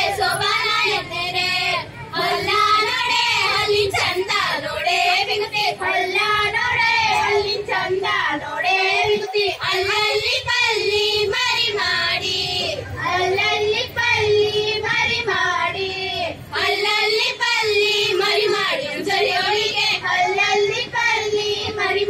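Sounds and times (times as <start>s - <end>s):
women singing folk song: 0.0s - 22.0s.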